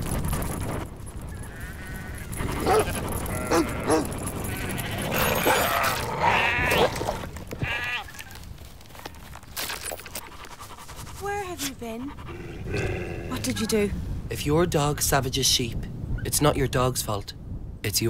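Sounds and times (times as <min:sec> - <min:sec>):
sheep bleating: 0:01.3 - 0:08.2.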